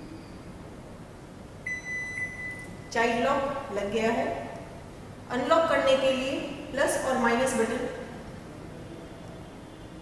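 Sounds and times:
high-pitched microwave beep: 0:01.6 - 0:03.0.

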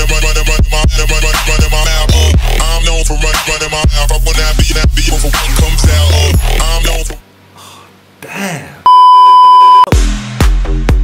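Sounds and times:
rap backing track: 0:00.0 - 0:07.2
electronic bleep: 0:08.9 - 0:09.9.

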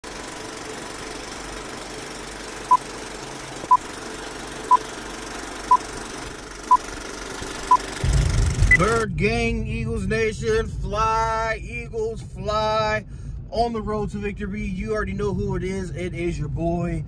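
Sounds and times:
film projector rattle and crackle: 0:00.0 - 0:08.8.

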